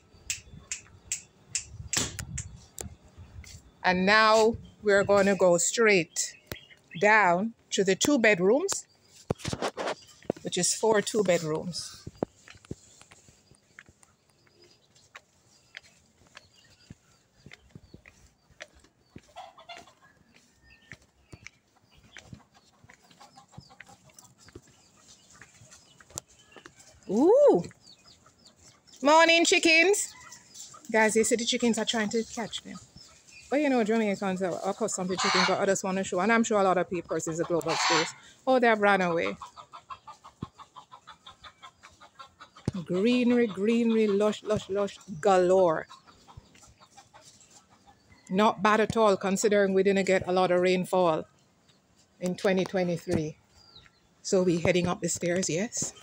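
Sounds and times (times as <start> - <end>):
footsteps on garden path: 0.1 - 56.0.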